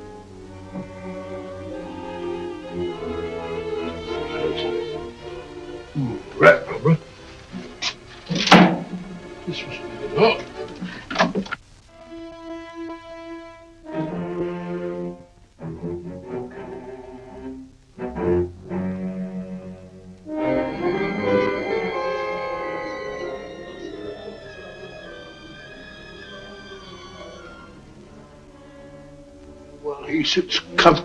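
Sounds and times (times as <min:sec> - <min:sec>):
orchestral strings: 0:00.0 - 0:31.0.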